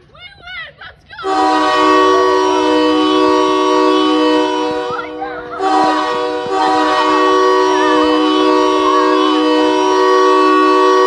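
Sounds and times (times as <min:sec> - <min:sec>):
sustained multi-pitch tone: 0:01.3 - 0:11.0.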